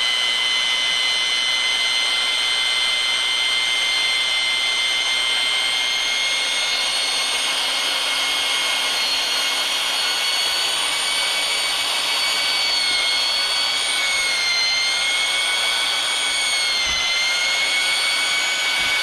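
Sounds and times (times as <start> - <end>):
drill mixer whining: 0.0 - 19.0.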